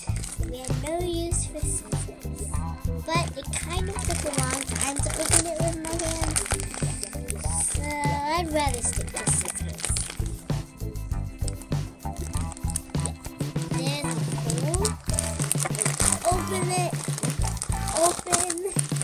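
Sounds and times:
plastic bag crinkling and tearing: 0.0s - 0.9s, 3.2s - 10.4s, 11.4s - 19.0s
background music: 0.0s - 19.0s.

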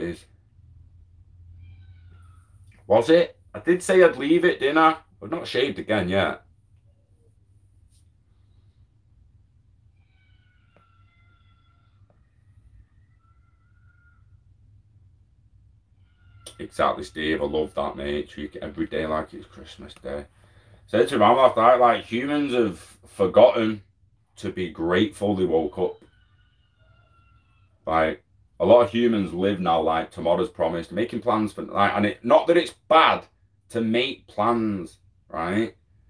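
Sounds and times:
man speaking: 0.0s - 0.3s, 2.8s - 6.4s, 16.5s - 20.3s, 20.9s - 23.8s, 24.4s - 26.0s, 27.9s - 35.8s.

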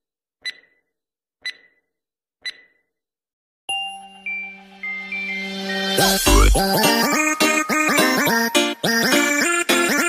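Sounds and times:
short bright timer ticks: 0.4s - 0.8s, 1.4s - 1.7s
intro music jingle: 3.8s - 7.6s.

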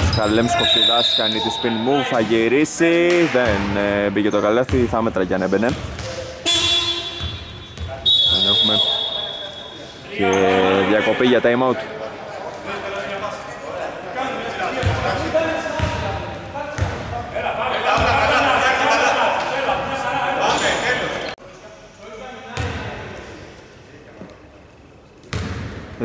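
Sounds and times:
voices echoing in gym: 0.0s - 26.0s.

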